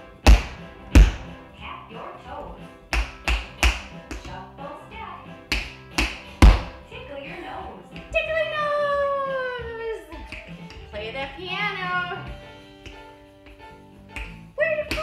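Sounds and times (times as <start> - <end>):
background music with singing: 0.0 - 15.0
tap shoes on hardwood floor: 0.2 - 1.4, 2.5 - 4.4, 5.4 - 6.9, 7.9 - 15.0.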